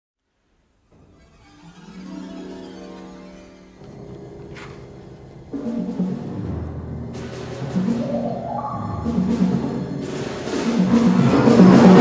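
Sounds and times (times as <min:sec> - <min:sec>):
orchestra playing low chords: 0:00.9 - 0:12.0.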